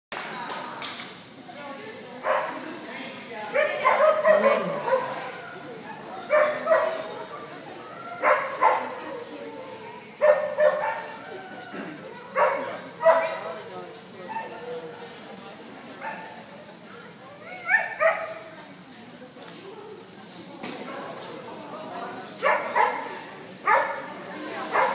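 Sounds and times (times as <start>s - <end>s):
dog barking: 2.2s - 2.6s, 3.6s - 5.4s, 6.2s - 7.0s, 8.2s - 9.0s, 10.2s - 11.2s, 12.4s - 13.4s, 17.6s - 18.5s, 22.4s - 24.9s.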